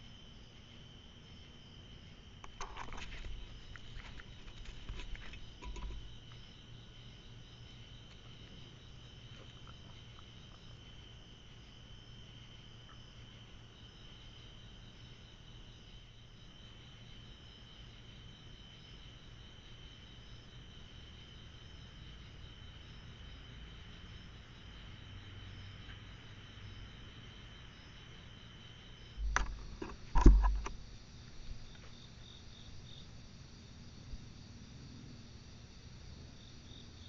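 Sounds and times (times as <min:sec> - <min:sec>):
crickets chirping: 0:00.0 - 0:37.0.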